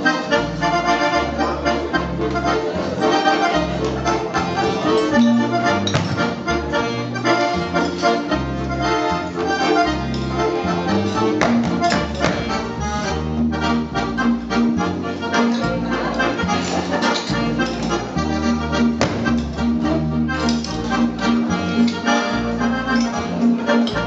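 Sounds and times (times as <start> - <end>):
accordion dance tune: 0.0 - 24.0.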